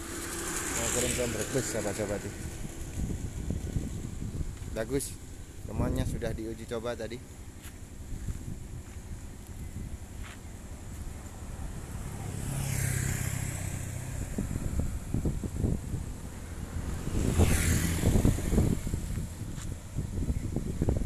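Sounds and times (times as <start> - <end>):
vehicles driving past: 0.0 - 21.0
wind rumble on microphone: 0.0 - 21.0.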